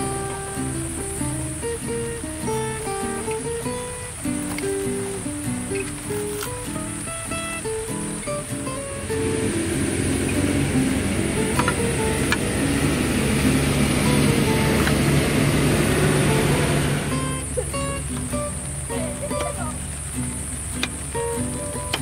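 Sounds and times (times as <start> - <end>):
acoustic guitar music: 0.0 - 22.0.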